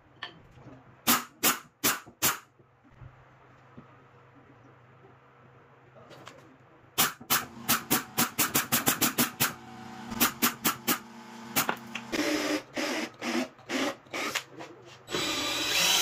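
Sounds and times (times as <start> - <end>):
screwdriver motor tone: 15.1 - 16.0.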